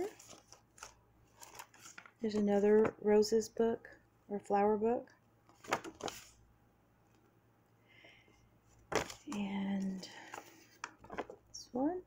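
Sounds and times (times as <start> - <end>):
book pages rustling: 0.0 - 3.0, 5.5 - 6.4, 8.7 - 11.5.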